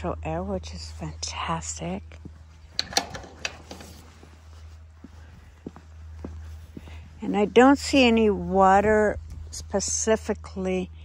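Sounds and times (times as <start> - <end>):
low steady hum: 0.0 - 11.0
footsteps on concrete: 2.1 - 10.1.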